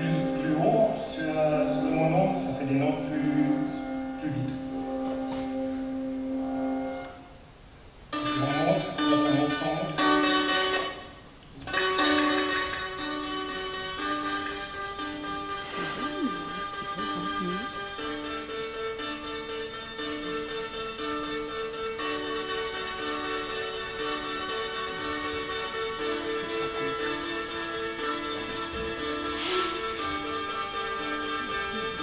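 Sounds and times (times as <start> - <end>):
electronic music pattern: 14.0 - 18.3
brief hiss: 29.3 - 30.0.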